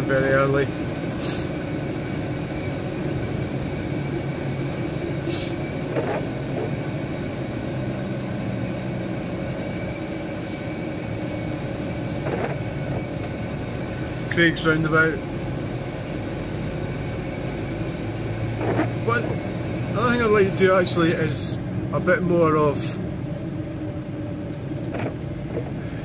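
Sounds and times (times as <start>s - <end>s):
engine hum: 0.0s - 26.0s
tyres on wet road: 0.0s - 26.0s.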